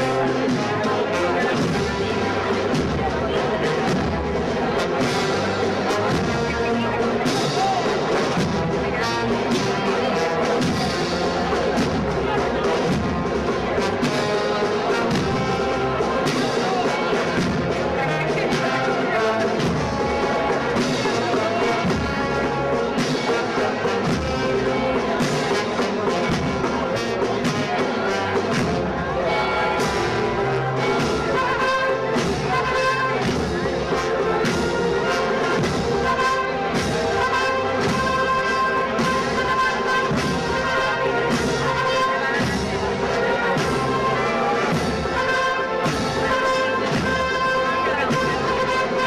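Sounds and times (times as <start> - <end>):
brass melody: 0.0 - 49.0
drum strokes: 0.0 - 49.0.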